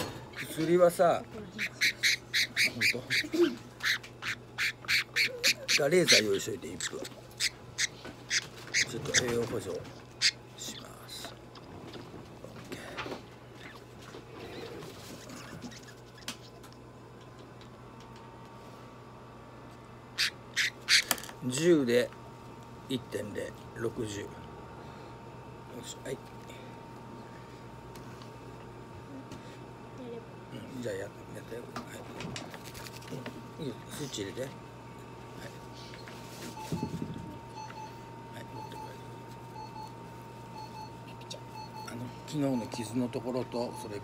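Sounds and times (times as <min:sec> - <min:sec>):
steady low hum: 0:00.0 - 0:44.0
budgerigar squawking: 0:01.6 - 0:09.5, 0:10.2 - 0:10.8, 0:20.2 - 0:21.1
short electronic beeps: 0:36.5 - 0:37.0, 0:37.6 - 0:39.0, 0:40.6 - 0:44.0.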